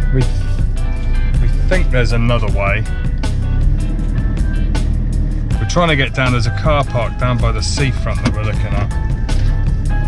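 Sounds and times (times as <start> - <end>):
background music: 0.0 - 10.0
van engine running: 0.0 - 10.0.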